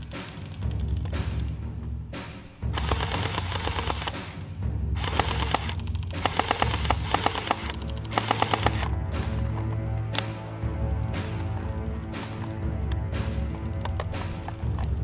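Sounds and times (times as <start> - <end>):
background music with a beat: 0.0 - 15.0
gel blaster full-auto bursts: 2.7 - 4.3, 5.0 - 8.9.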